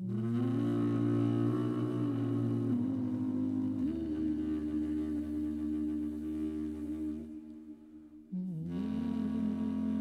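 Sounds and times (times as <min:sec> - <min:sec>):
reed instrument note: 0:00.0 - 0:10.0.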